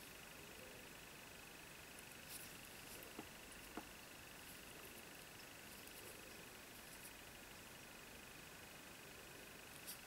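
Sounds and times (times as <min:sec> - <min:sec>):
faint steady hiss: 0:00.0 - 0:10.0
thin high-pitched whine: 0:00.0 - 0:10.0.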